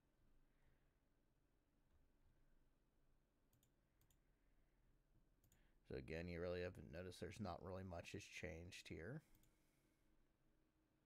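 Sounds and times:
faint mouse clicks: 0:03.5 - 0:04.2, 0:05.4 - 0:05.7.

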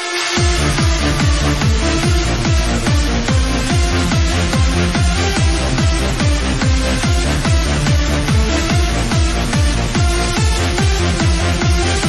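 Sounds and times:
techno dance music: 0:00.0 - 0:12.0.

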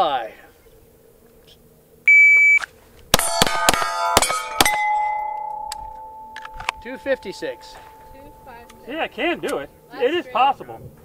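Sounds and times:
shot timer beep: 0:02.1 - 0:02.6
pistol shots: 0:03.2 - 0:04.9
steel plate clanging: 0:03.2 - 0:08.9.

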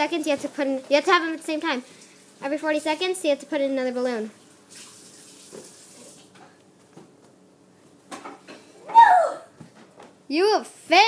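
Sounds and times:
short falling vocal cry: 0:08.8 - 0:09.5.

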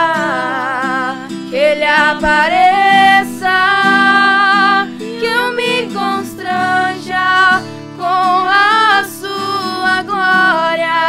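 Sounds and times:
strummed acoustic guitar: 0:00.0 - 0:11.0
women singing worship song: 0:00.0 - 0:11.0.

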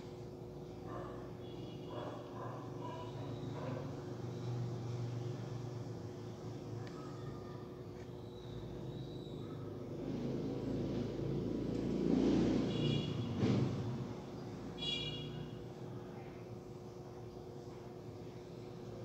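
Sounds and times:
passing vehicle rumble: 0:10.0 - 0:14.7.

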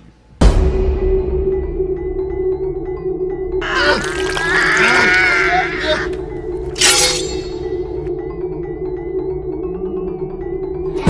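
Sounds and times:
woman screaming: 0:03.6 - 0:06.2.

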